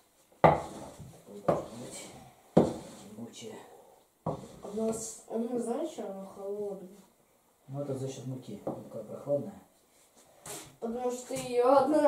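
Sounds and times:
heavy knocks of kneading dough: 0:00.4 - 0:01.7, 0:02.6 - 0:02.9.

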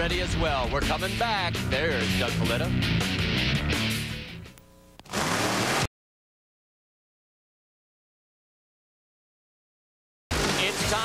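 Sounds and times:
hiss-like static burst: 0:05.0 - 0:05.9.

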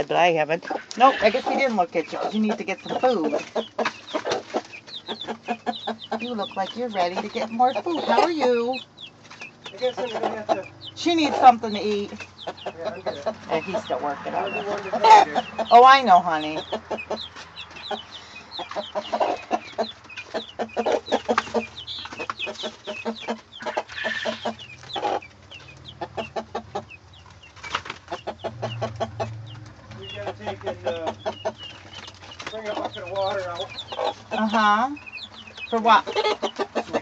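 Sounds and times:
chicks peeping: 0:00.0 - 0:37.0
hen clucking: 0:00.0 - 0:37.0.

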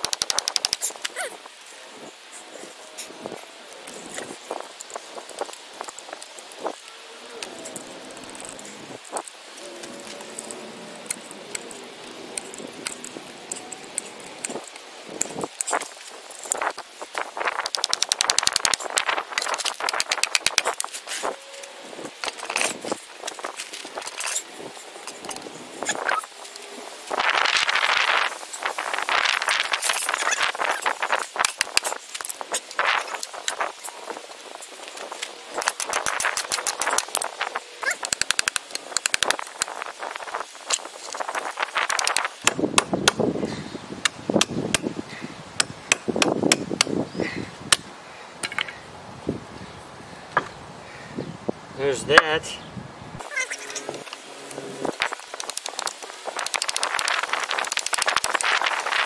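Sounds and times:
ratchet wrench clicking: 0:00.0 - 0:00.9.

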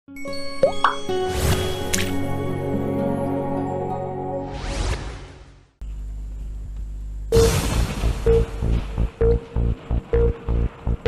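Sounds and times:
sustained synth notes: 0:07.4 - 0:11.0.

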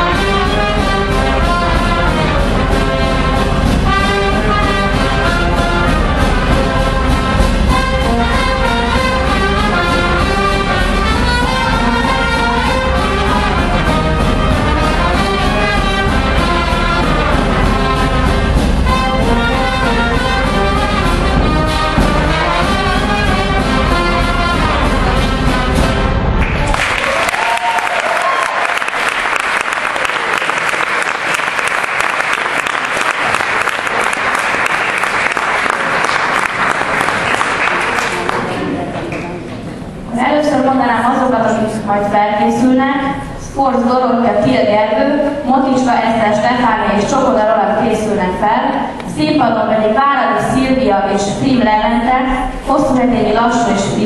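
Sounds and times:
brass band playing folk dance: 0:00.0 - 0:54.0
audience applauding: 0:26.4 - 0:39.3.

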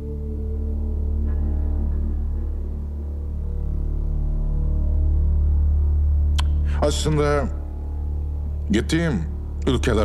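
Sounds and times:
dramatic background score drone: 0:00.0 - 0:10.0
man speaking: 0:06.7 - 0:07.6, 0:08.7 - 0:10.0.

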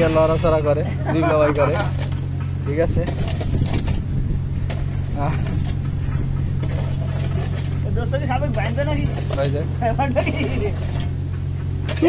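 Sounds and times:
voices: 0:00.0 - 0:03.9, 0:04.6 - 0:06.7, 0:07.4 - 0:12.0
low engine hum: 0:00.0 - 0:12.0.

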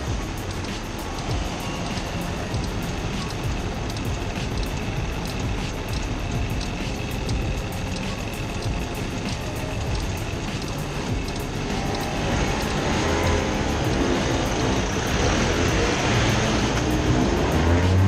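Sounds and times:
go-kart engines idling and revving: 0:00.0 - 0:18.0.

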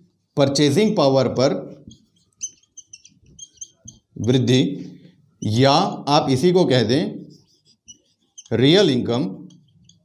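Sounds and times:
marker squeaking on a whiteboard: 0:01.5 - 0:06.1, 0:06.8 - 0:10.0.

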